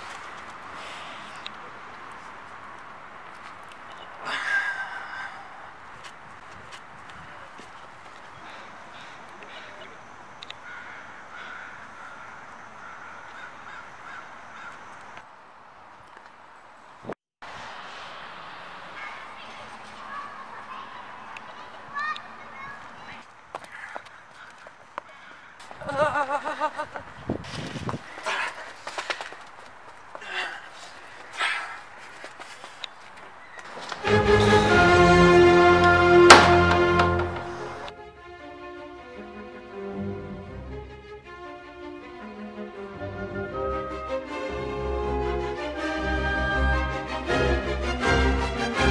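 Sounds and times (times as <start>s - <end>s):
footsteps on paved path: 0.0s - 4.2s, 5.8s - 9.8s, 19.1s - 34.3s, 35.6s - 37.9s
outdoor background noise: 0.0s - 48.9s
crow cawing: 10.5s - 14.9s, 23.7s - 25.7s.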